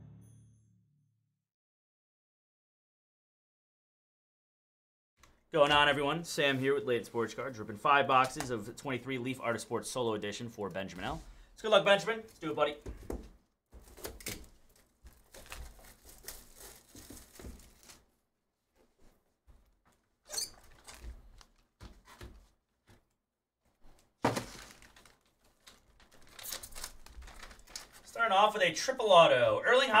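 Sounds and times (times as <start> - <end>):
plastic wrap crinkling and tearing: 13.8 - 18.1, 20.6 - 21.7, 24.2 - 28.2
pack wrapper crinkling: 13.9 - 18.1, 20.6 - 21.7, 24.2 - 28.2.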